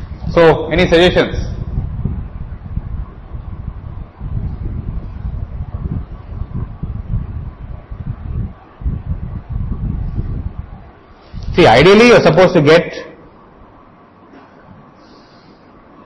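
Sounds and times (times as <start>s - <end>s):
microphone rumble: 0.0s - 12.0s
faint steady hum: 0.0s - 16.0s.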